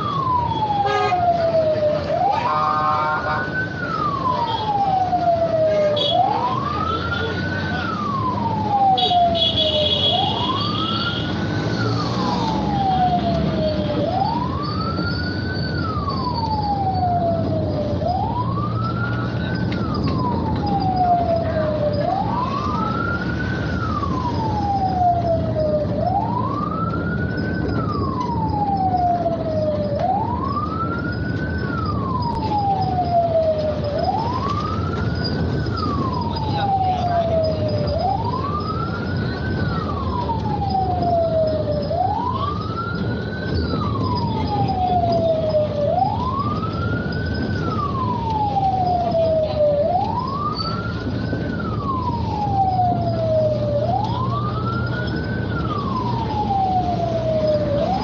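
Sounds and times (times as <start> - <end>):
vehicle engine and road noise: 0.0 - 58.0
wailing siren: 0.0 - 58.0.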